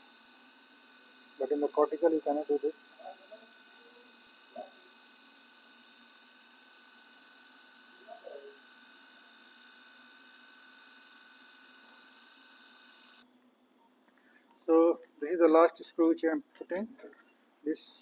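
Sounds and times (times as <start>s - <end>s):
thin high whining tones: 0.0s - 13.2s.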